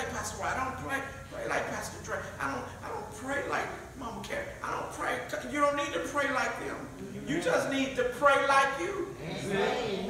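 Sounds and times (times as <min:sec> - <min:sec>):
man preaching into a microphone: 0:00.0 - 0:10.0.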